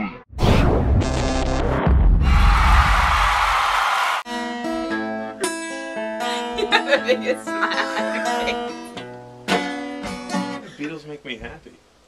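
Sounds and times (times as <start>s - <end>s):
plucked guitar notes: 4.3s - 10.6s.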